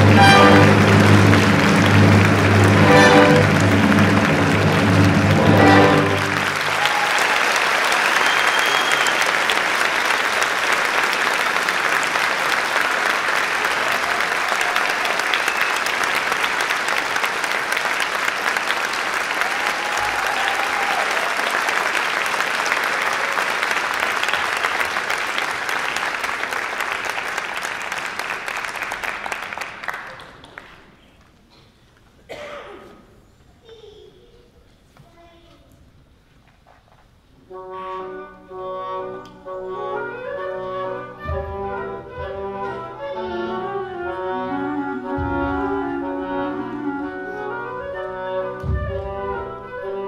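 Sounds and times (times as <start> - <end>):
orchestra closing chord: 0.0 - 6.8
audience applauding: 0.0 - 31.5.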